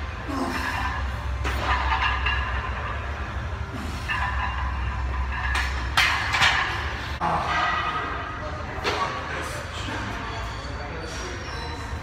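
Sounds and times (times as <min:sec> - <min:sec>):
low steady hum: 0:00.0 - 0:10.2.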